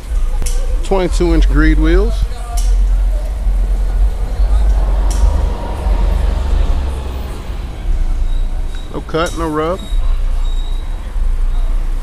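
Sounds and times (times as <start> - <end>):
vehicle motor rumble: 0.0 - 12.0.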